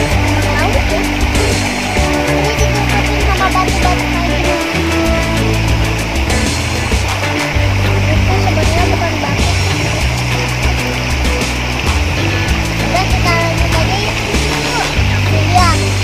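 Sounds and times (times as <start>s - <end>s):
fast driving drum beat: 0.0s - 16.0s
held bass notes: 0.0s - 16.0s
loud background music: 0.0s - 16.0s.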